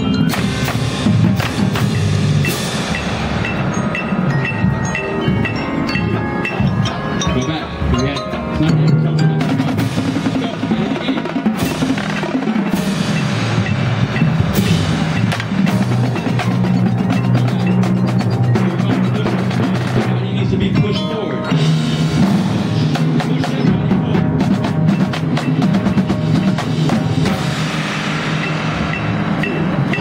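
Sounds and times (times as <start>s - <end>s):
snare and tenor drums: 0.0s - 3.6s, 8.6s - 30.0s
bass drums: 0.0s - 30.0s
mallet keyboard low notes: 0.0s - 30.0s.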